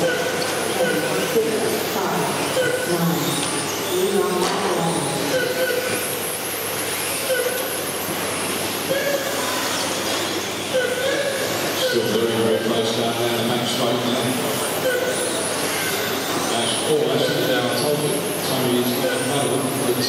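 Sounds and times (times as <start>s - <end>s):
indistinct voice: 0.0s - 6.0s.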